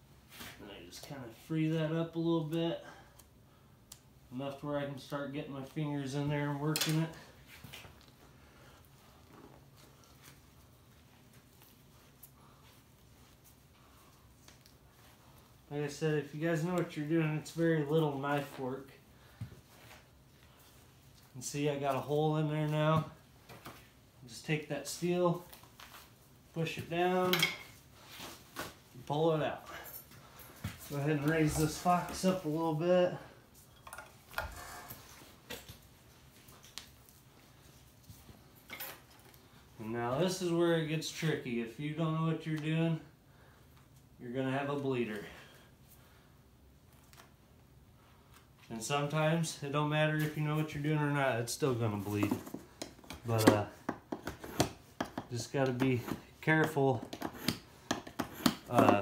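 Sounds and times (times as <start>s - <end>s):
soft clicks and rustles of hide: 29.8s - 32.7s.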